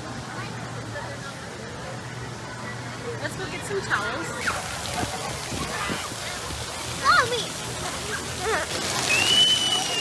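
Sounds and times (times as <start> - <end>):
water jets spraying: 0.0 - 10.0.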